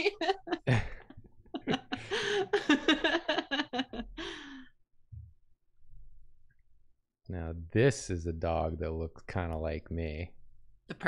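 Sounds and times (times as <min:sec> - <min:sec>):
laughter: 0:00.0 - 0:04.2.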